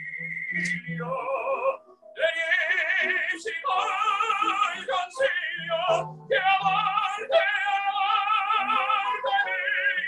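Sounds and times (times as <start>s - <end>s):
operatic tenor singing: 0.0s - 10.0s.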